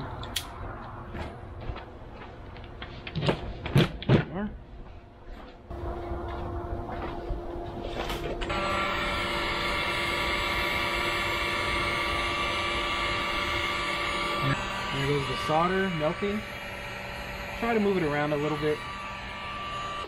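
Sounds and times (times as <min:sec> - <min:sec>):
heat gun fan whirring: 0:00.0 - 0:01.1, 0:05.7 - 0:20.0.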